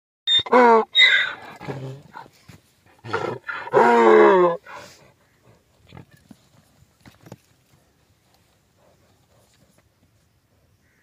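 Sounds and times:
donkey braying: 0.3 - 2.3, 3.0 - 4.9.

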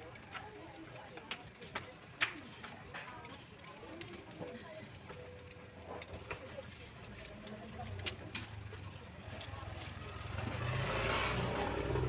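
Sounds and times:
vehicle passing by: 9.2 - 12.0.

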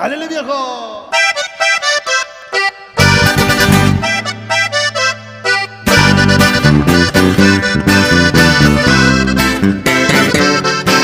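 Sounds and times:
accordion notes: 1.0 - 11.0
full band playing: 2.6 - 11.0
strong bass line: 3.0 - 11.0.

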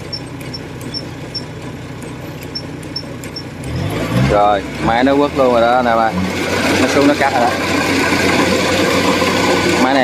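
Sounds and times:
combine harvester diesel engine: 0.0 - 10.0.

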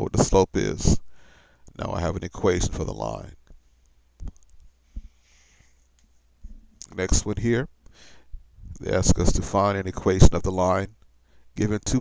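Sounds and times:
faint hiss: 0.0 - 12.0
man speaking: 1.7 - 3.4, 6.8 - 7.7, 8.8 - 11.0, 11.6 - 12.0.

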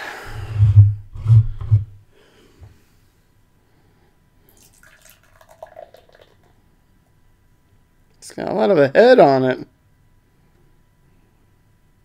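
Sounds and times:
beer pouring into a glass: 4.5 - 6.6.

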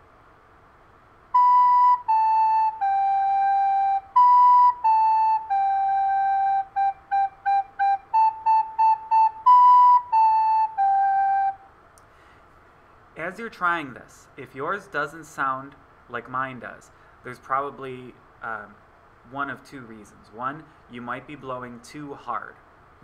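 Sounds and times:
recorder playing simple tune: 1.3 - 11.7.

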